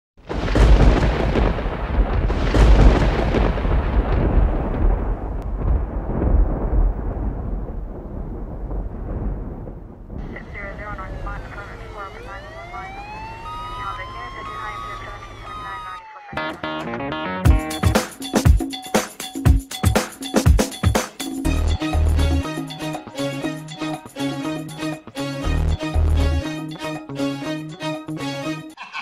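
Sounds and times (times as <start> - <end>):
loud hits: 0.2 - 7.6
deep rumbling noise: 0.3 - 12.3
sweeping electronic tones: 11.4 - 16.1.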